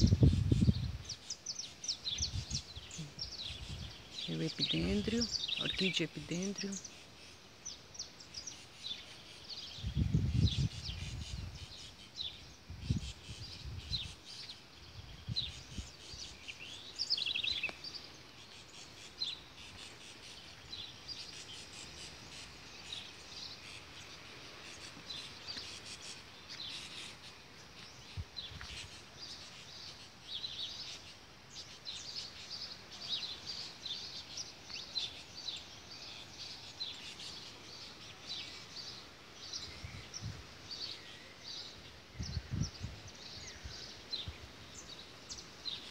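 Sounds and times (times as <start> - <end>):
faint outdoor hiss: 0.0 - 45.9
small birds chirping: 0.0 - 45.9.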